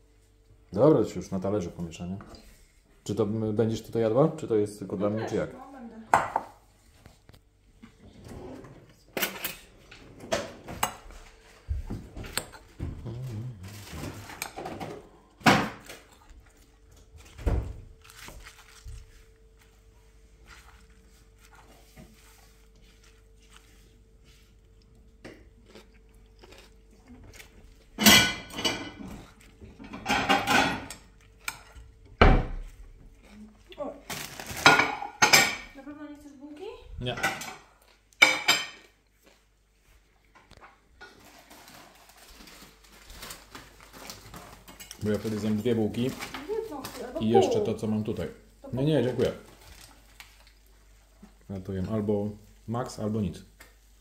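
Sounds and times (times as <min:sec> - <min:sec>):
dishes and cutlery clinking: 0:09.2 - 0:11.2, 0:28.0 - 0:31.7, 0:34.6 - 0:35.8, 0:37.1 - 0:39.0
fork stirring salad in glass bowl: 0:20.4 - 0:24.5.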